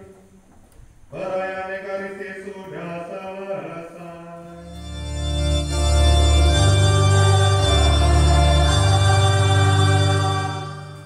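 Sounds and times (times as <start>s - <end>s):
keyboard playing organ-style chords: 4.4s - 11.0s.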